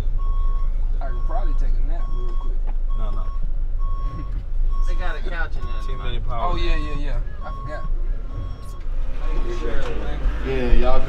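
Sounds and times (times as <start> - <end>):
low rumble of van cabin: 0.0 - 11.0
vehicle warning beep: 0.0 - 11.0.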